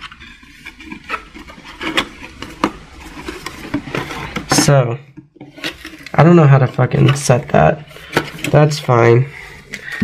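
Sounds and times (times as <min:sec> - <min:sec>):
hands rummaging in cardboard box: 0:00.0 - 0:04.8.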